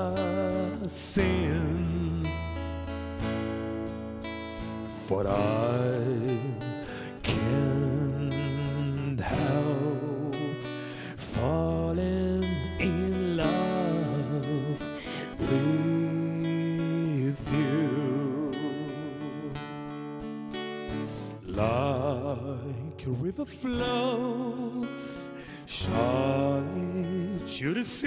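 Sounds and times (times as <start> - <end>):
man singing with vibrato: 0.0 - 3.1, 4.5 - 19.9, 20.9 - 28.0
strummed acoustic guitar: 0.0 - 28.0.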